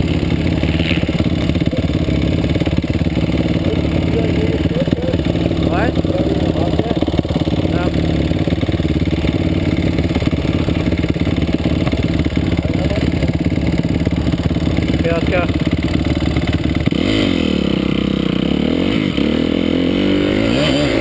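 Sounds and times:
dirt bike engines idling: 0.0 - 21.0
engine revving: 0.0 - 21.0.

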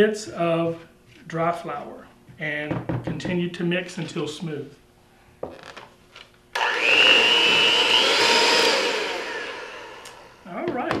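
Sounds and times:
electric hand mixer whirring: 6.6 - 10.5.

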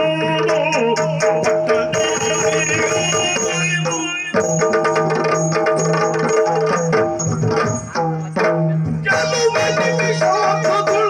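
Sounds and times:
drum beaten rapidly with sticks: 0.0 - 11.0.

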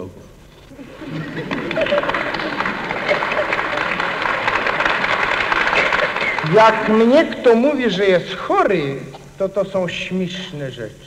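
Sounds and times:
audience applauding: 0.7 - 8.0
voices among clapping: 0.9 - 7.6.

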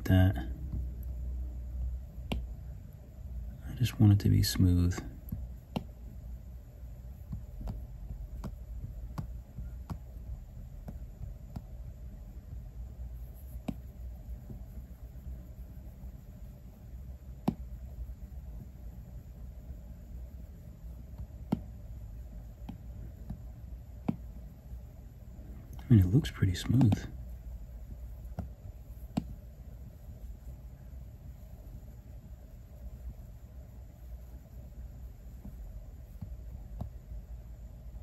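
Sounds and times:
low steady hum: 0.0 - 38.0
stylus tapping glass screen: 1.9 - 2.8, 5.0 - 6.1, 7.2 - 16.1, 17.2 - 18.8, 20.9 - 24.4, 25.7 - 30.3, 35.2 - 37.2.

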